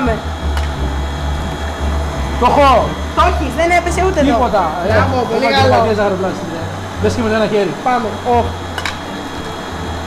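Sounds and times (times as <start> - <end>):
stand mixer motor running: 0.0 - 10.0.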